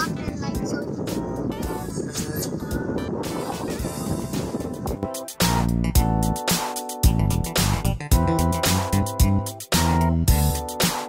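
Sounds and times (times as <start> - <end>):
wind and water rushing: 0.0 - 5.1
music with a beat: 0.0 - 11.0.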